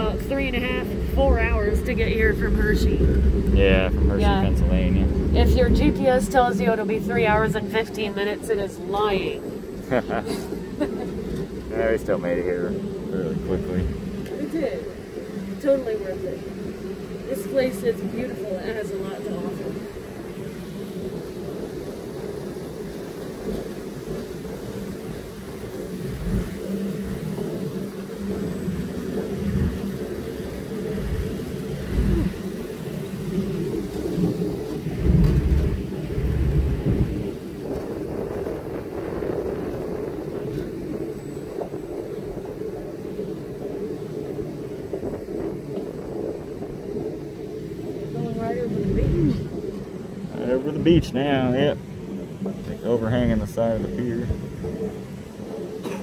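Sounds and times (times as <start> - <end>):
ride car rumbling on track: 0.0 - 47.1, 47.8 - 56.0.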